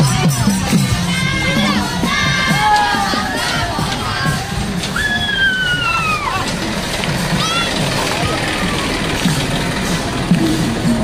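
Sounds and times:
group shouting and chanting: 0.0 - 6.5
drums beaten in rhythm: 0.0 - 11.0.

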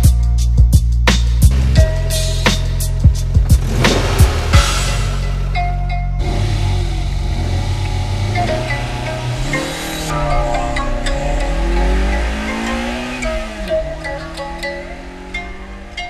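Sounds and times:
music playing: 0.0 - 16.0
car engine running: 3.0 - 16.0.

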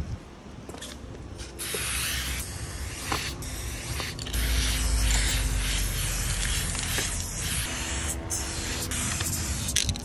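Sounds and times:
spray-paint can hissing: 1.6 - 10.0.

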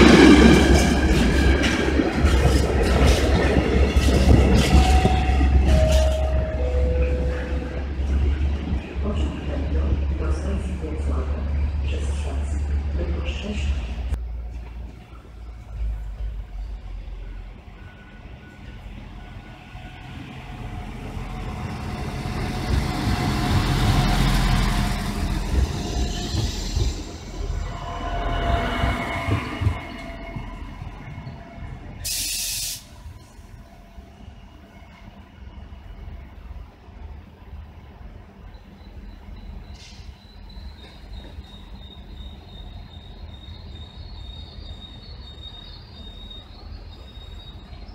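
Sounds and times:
railcar engine and wheels rumbling: 0.0 - 47.9
air hiss: 32.0 - 33.0.

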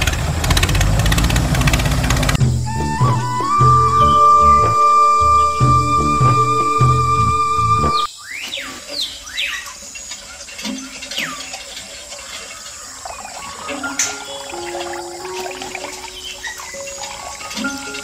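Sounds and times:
soft background music: 2.4 - 8.1, 13.6 - 18.0
falling whistle-like chirps: 2.4 - 8.6.

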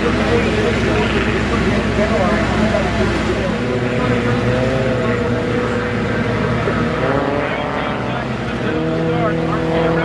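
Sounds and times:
racing boat engines: 0.0 - 10.0.

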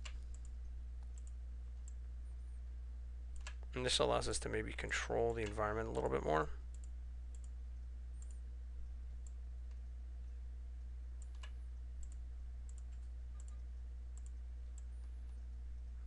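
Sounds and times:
steady low hum: 0.0 - 16.0
faint computer mouse clicks: 8.2 - 8.4, 11.2 - 13.6, 14.2 - 15.1.

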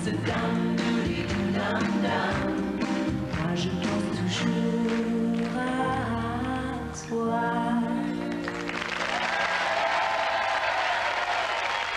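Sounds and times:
woman singing: 0.0 - 8.4
audience applause: 8.4 - 11.9.

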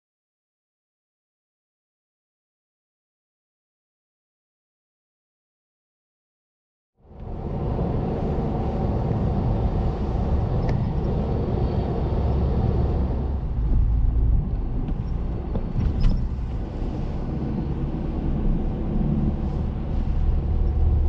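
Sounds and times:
car tyres and engine rumble: 7.0 - 21.0.

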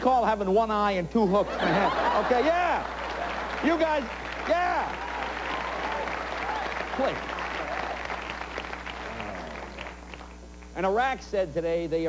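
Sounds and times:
audience applauding: 2.1 - 10.5.

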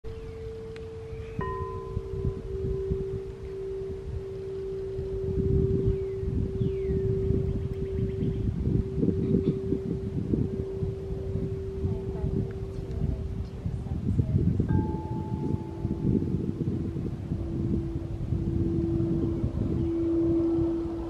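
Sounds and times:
low uneven rumble: 0.1 - 21.0
singing bowl tone: 0.1 - 21.0.

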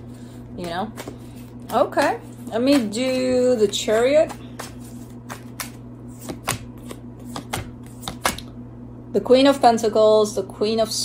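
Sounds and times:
steady low hum: 0.0 - 11.0
cards being shuffled: 0.6 - 8.5.

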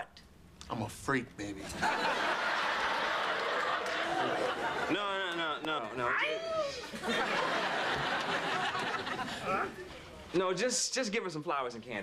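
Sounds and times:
studio audience laughing: 1.7 - 5.7, 6.8 - 9.8.

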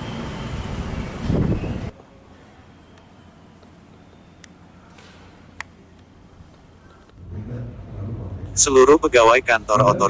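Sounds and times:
steady low rumble: 7.1 - 10.0.

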